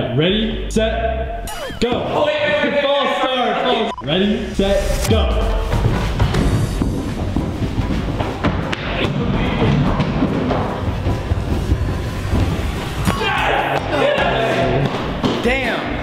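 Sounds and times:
footsteps on carpeted stairs: 0:05.5 - 0:08.8.

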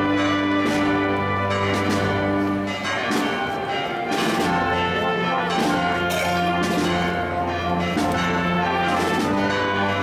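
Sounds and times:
church bells pealing: 0:00.0 - 0:10.0.

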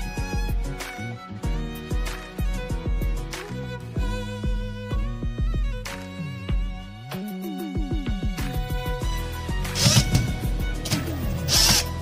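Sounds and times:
background music: 0:00.0 - 0:12.0
cordless drill driving screws: 0:09.7 - 0:12.0.

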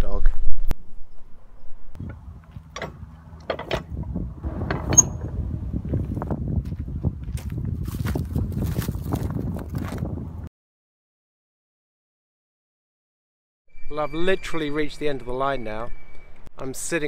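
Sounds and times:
metal lever knocks and clanks: 0:02.0 - 0:05.5
metal points grinding scrape: 0:02.6 - 0:05.4
sharp ringing metal clank: 0:04.5 - 0:05.4.

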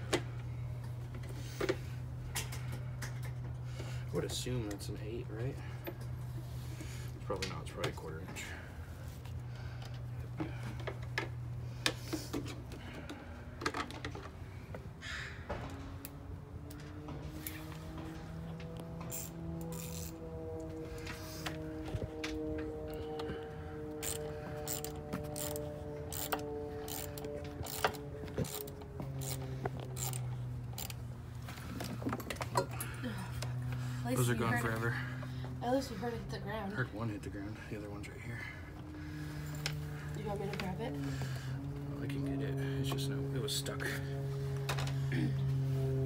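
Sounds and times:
steady low hum: 0:00.0 - 0:46.0
sustained droning tone: 0:00.0 - 0:46.0.

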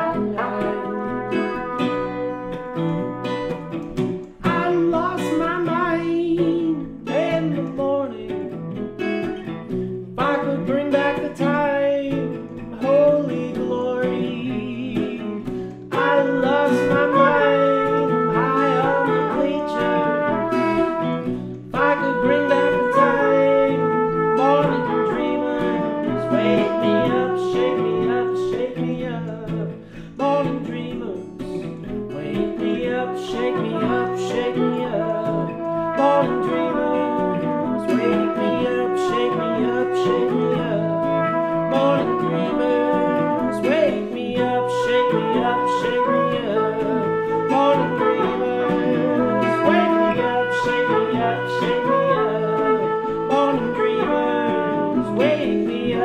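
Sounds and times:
trumpet playing melody: 0:00.0 - 0:07.7, 0:08.6 - 0:29.8, 0:31.1 - 0:56.0
acoustic guitar strumming: 0:00.0 - 0:56.0.

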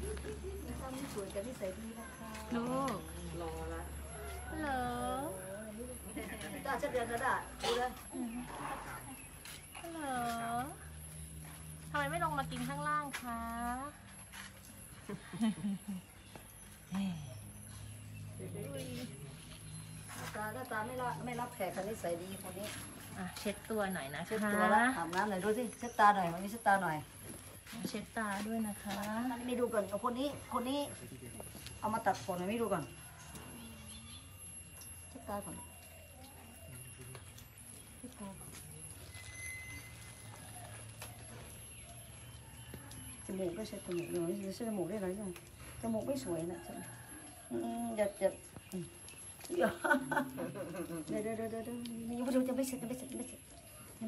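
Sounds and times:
cats eating wet food: 0:32.9 - 0:54.0.

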